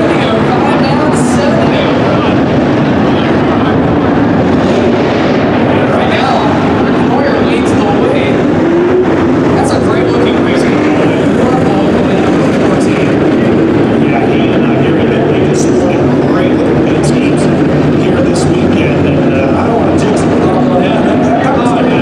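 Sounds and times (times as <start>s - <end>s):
race car engines droning: 0.0s - 22.0s.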